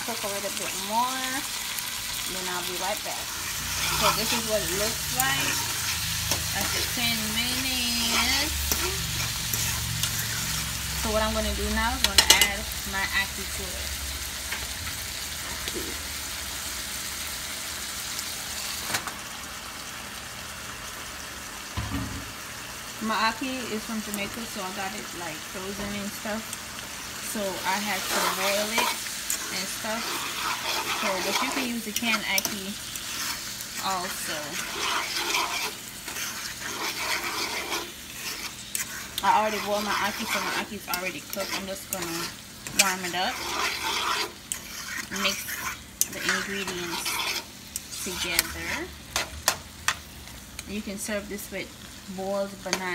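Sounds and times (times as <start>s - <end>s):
food sizzling in a pan: 0.0s - 52.9s.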